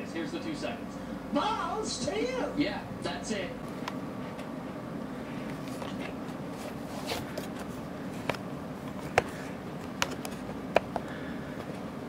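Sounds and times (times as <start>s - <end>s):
steady low hum: 0.0s - 12.0s
camera handling rustle and scrape: 5.4s - 11.0s.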